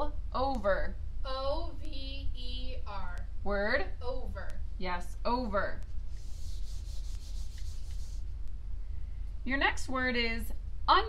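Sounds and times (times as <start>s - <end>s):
eraser wiping whiteboard: 6.1s - 8.3s.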